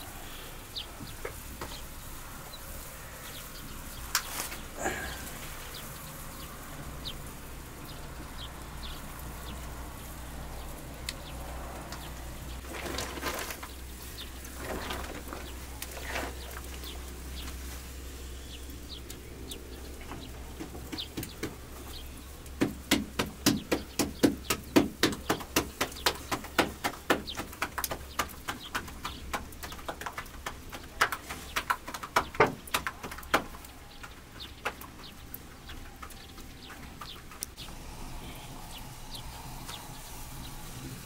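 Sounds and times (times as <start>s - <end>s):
hands slapping dough: 22.6s - 35.0s.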